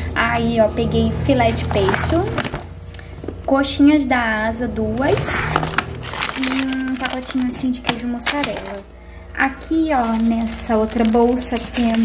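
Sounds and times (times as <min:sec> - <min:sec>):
plastic packages crinkling: 0:05.0 - 0:08.9, 0:09.7 - 0:12.0.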